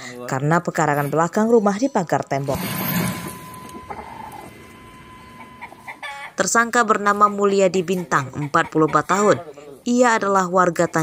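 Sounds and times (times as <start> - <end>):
thin steady high tone: 2.6 - 7.0
chickens clucking: 3.7 - 9.6.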